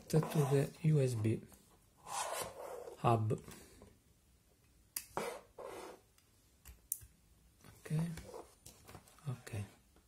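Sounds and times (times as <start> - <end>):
plastic rubbing scrape: 0.1 - 0.8.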